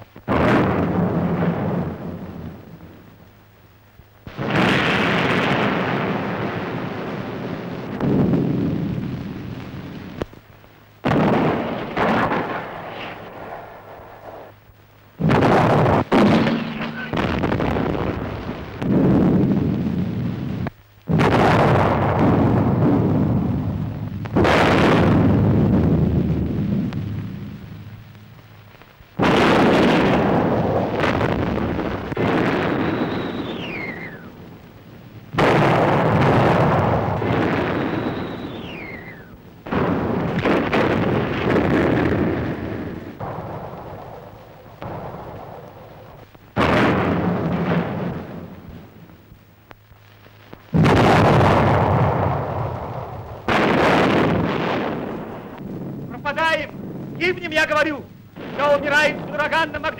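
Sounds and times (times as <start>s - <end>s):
artillery shell explosions: 0.0s - 3.3s, 4.2s - 10.4s, 11.0s - 14.6s, 15.2s - 49.4s, 50.6s - 59.9s
incoming shell whistle: 32.6s - 34.4s, 37.6s - 39.4s.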